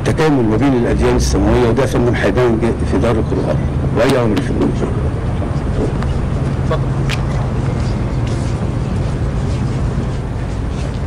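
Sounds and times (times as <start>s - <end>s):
low hum: 0.0s - 11.0s
low outdoor rumble: 0.0s - 11.0s.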